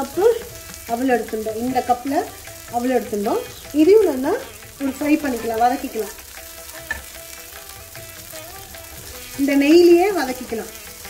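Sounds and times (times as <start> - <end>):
spatula stirring rice in pan: 0.0 - 11.0.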